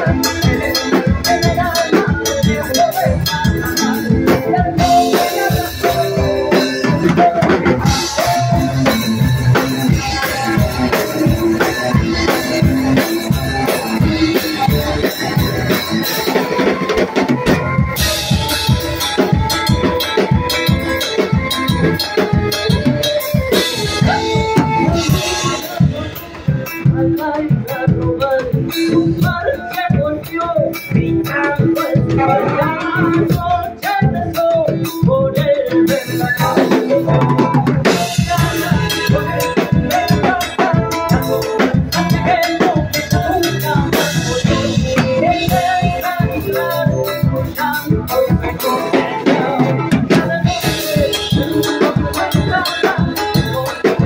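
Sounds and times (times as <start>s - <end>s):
drum kit beating: 0.0s - 54.0s
electric guitars: 0.0s - 54.0s
person singing: 0.0s - 54.0s.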